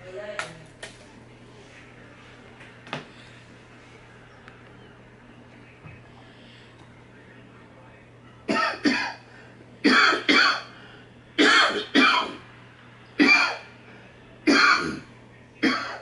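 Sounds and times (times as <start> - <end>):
person coughing harshly: 8.5 - 9.2, 9.8 - 10.7, 11.4 - 12.4, 13.2 - 13.7, 14.5 - 16.0.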